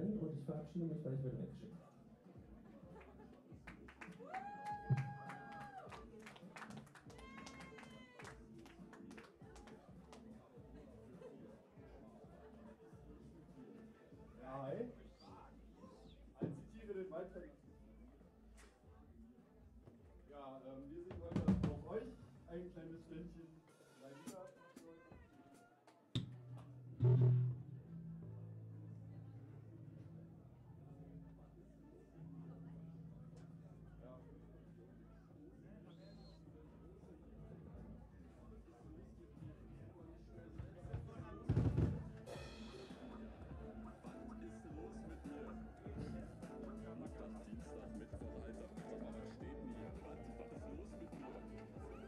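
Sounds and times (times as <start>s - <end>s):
low bass note: 26.9s - 29.4s
drum hits: 27.0s - 27.8s, 41.2s - 43.7s
voices talking: 39.2s - 52.0s
scattered stage sounds: 40.5s - 52.0s.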